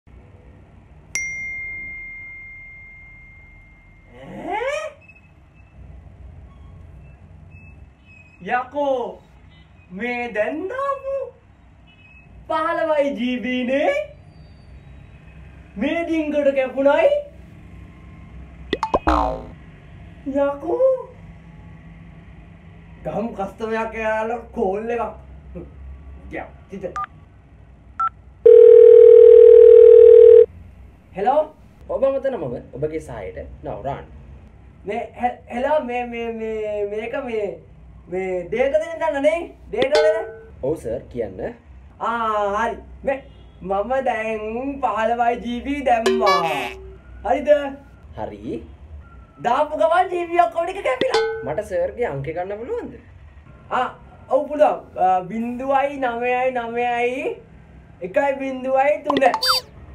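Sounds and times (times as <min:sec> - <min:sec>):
bell-like ding: 0:01.2 - 0:04.1, 0:39.8 - 0:40.6, 0:46.1 - 0:46.8, 0:51.0 - 0:51.8
phone keypad beep: 0:28.0 - 0:30.5, 0:46.1 - 0:46.8, 0:59.1 - 0:59.6
low telephone line tone: 0:28.4 - 0:30.5.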